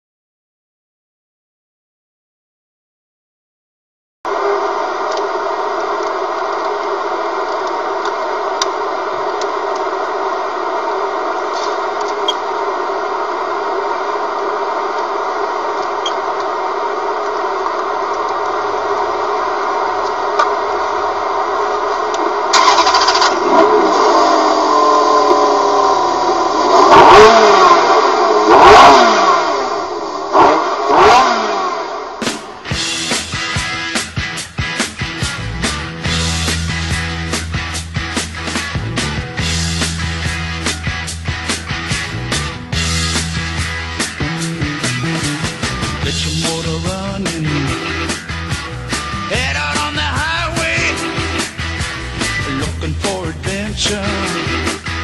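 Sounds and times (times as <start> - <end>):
sports car engine revving: 4.3 - 32.6
rhythmic music: 32.7 - 55.0.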